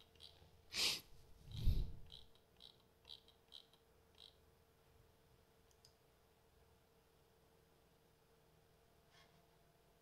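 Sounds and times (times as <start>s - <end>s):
faint computer mouse clicks: 5.7s - 6.0s.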